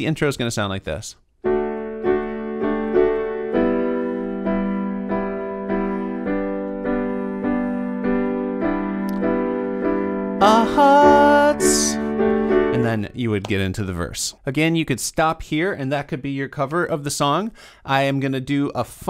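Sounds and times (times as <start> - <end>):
digital piano chords: 1.4 - 13.7
man singing: 10.4 - 12.0.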